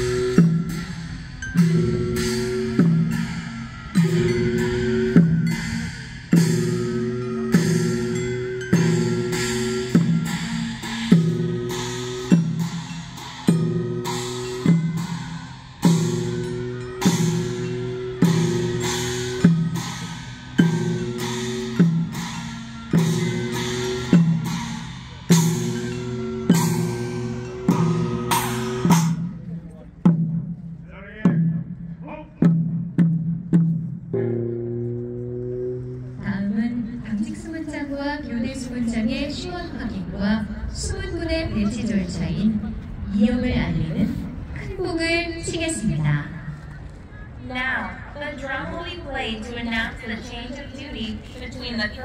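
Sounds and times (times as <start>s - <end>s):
processional music: 0.0s - 29.6s
drum beaten at steady pace: 0.0s - 44.8s.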